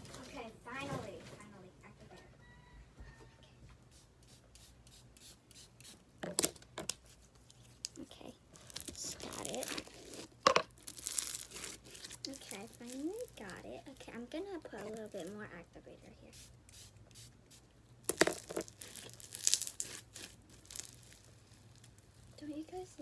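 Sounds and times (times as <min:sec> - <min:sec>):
slime crackling and squishing: 0:07.6 - 0:15.5, 0:18.0 - 0:23.0.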